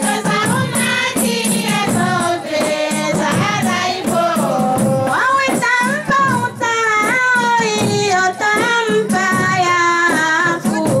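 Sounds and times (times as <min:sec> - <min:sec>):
light percussion beat: 0:00.0 - 0:11.0.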